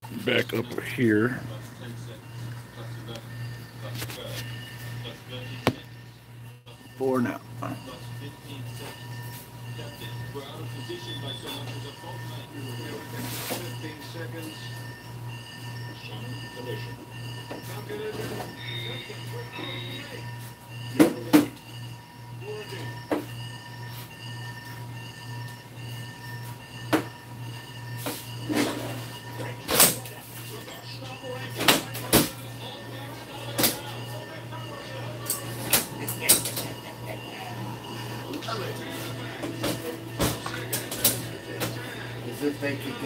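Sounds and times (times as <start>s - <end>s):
steady low hum: 13.8s - 43.0s.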